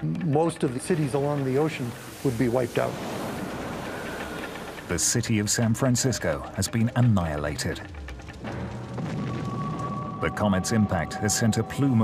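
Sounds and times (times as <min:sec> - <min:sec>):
steady rushing noise: 0:00.6 - 0:06.8.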